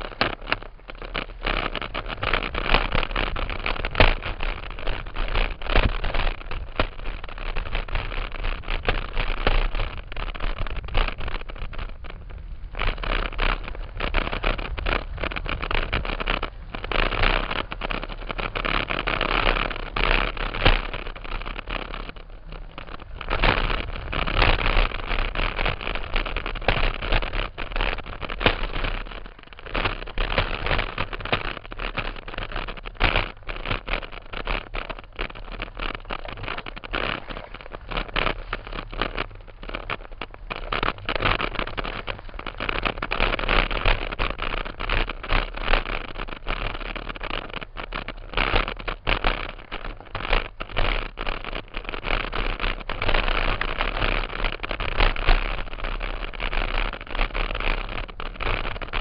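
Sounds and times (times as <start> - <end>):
bike rattling over rocks: 0.0 - 59.0
wind and tyre noise: 0.0 - 59.0.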